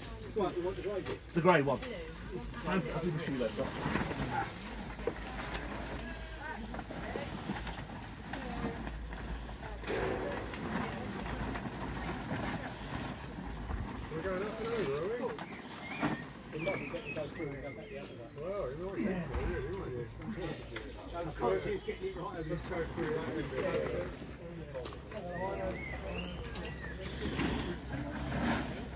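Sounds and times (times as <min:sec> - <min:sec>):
distant people talking: 0:00.0 - 0:28.9.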